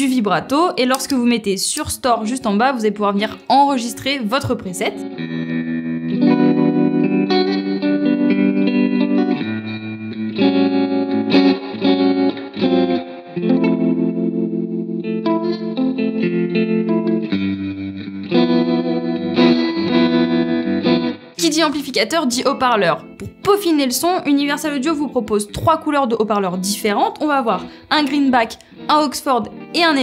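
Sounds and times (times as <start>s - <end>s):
electric guitar chords with reverb: 3.3s - 30.0s.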